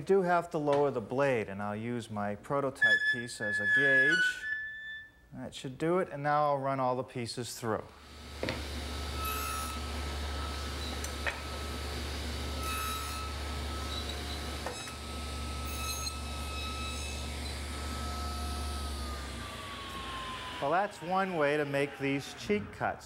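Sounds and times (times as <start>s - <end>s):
table saw running: 8.0s - 22.4s
saw cutting wood: 8.0s - 22.5s.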